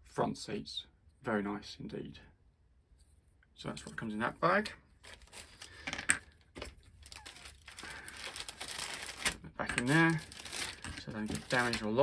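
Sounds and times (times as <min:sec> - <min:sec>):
plastic bag crinkling: 0:05.0 - 0:12.0.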